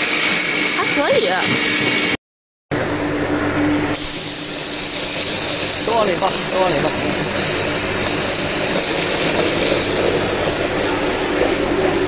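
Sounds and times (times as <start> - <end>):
mill motor hum and grinding: 0.0 - 12.0
loud hiss: 3.4 - 12.0.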